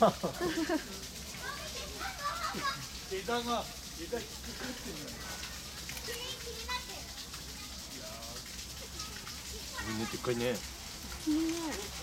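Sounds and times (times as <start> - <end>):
people talking over one another: 1.2 - 12.0
children's voices: 1.3 - 3.1, 5.1 - 8.1, 8.7 - 10.3.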